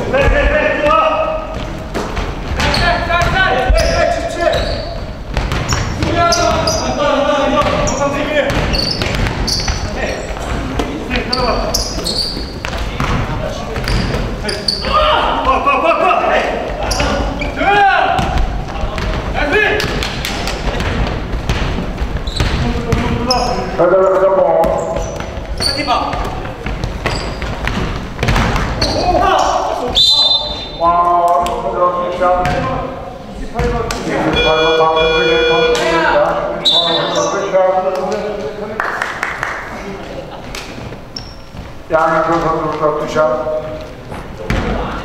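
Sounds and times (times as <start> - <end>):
basketball bouncing on hardwood floor: 5.2 - 6.8, 7.6 - 10.6, 12.6 - 14.1, 18.2 - 23.4, 24.6 - 29.0, 32.4 - 32.7
players calling out: 34.0 - 37.6.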